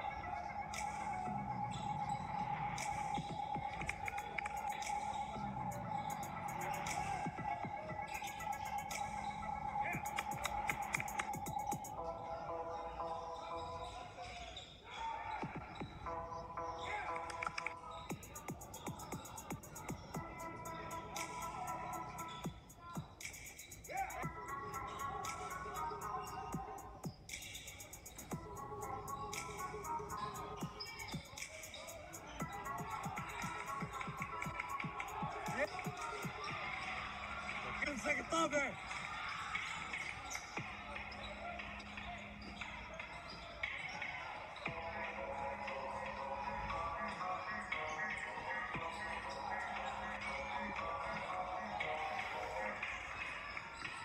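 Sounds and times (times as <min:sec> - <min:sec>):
crowd and player voices: 0:00.0 - 0:54.0
murmur of spectators: 0:00.0 - 0:54.0
backing music: 0:15.9 - 0:38.6.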